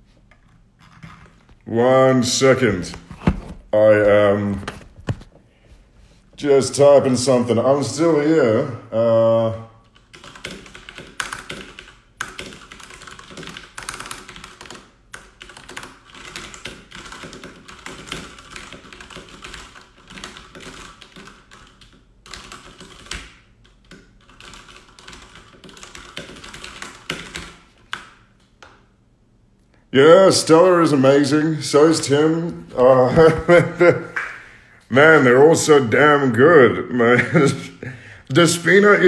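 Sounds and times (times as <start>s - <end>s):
keyboard typing: 9.8s - 28.8s.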